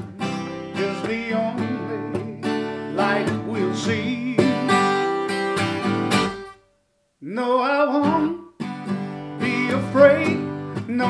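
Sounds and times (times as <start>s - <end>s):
acoustic guitar strummed: 0.0s - 6.8s, 7.7s - 11.0s.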